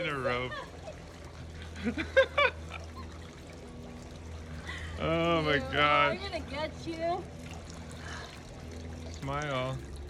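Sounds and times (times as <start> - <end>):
steady low hum: 0.0 - 10.0
woman laughing: 0.2 - 3.4.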